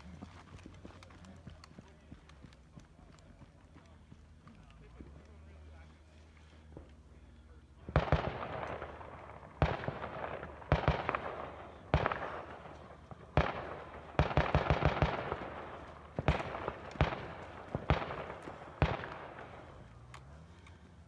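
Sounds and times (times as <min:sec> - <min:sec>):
echoing gunshots: 0:07.8 - 0:21.0.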